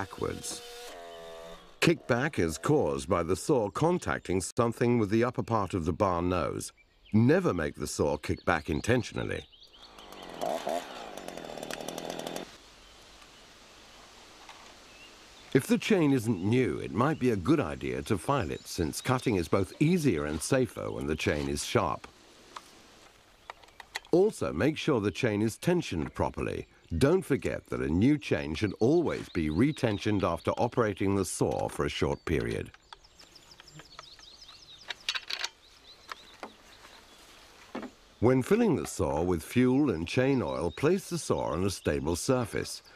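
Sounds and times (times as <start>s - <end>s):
chainsaw engine running: 0.0s - 1.8s, 9.9s - 12.6s
faint outdoor background: 0.0s - 42.9s
small bird chirping: 31.5s - 38.2s.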